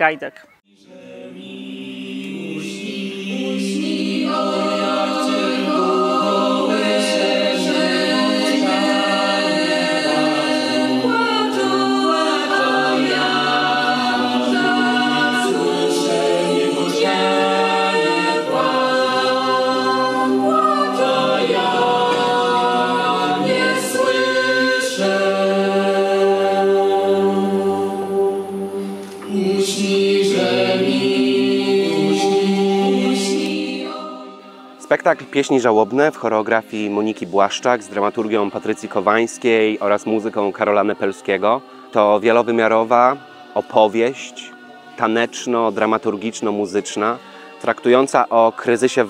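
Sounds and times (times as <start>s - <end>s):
unaccompanied choir singing: 0.7s - 49.0s.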